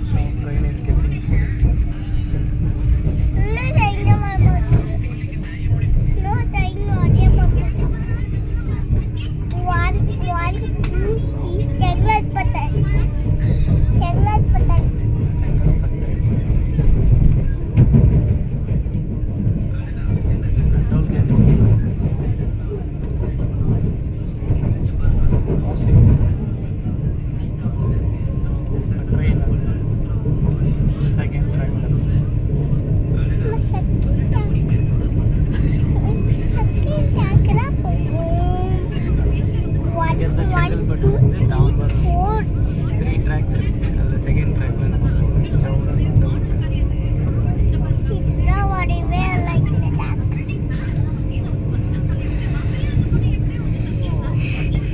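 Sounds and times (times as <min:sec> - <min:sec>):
electric train low rumble: 0:00.0 - 0:54.9
people talking: 0:00.0 - 0:54.9.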